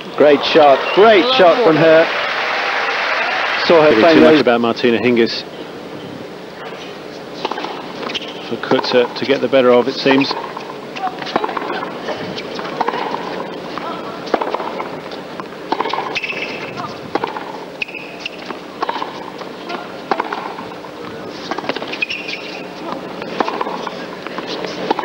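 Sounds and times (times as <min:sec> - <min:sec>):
arena crowd hum: 0:00.0 - 0:25.0
tennis racquets hitting ball: 0:07.4 - 0:09.2, 0:10.1 - 0:25.0.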